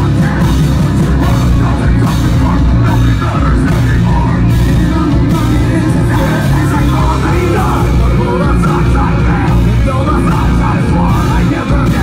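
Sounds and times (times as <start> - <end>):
bass guitar: 0.0 - 12.0
distorted electric guitars: 0.0 - 12.0
drum kit: 0.0 - 12.0.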